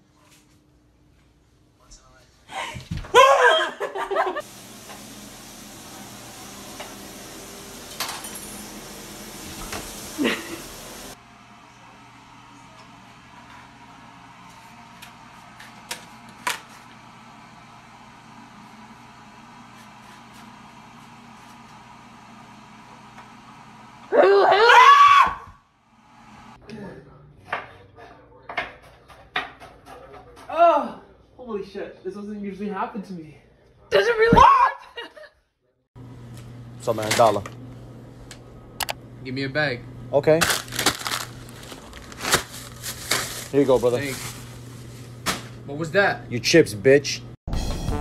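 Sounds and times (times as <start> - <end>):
steady kitchen hum: 0.0 - 35.2, 36.0 - 47.4
person shouting: 24.1 - 25.5, 34.0 - 35.0.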